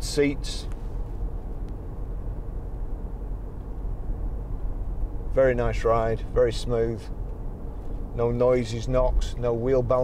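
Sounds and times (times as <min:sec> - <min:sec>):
car engine hum: 0:00.0 - 0:10.0
road and tyre rumble: 0:00.0 - 0:10.0.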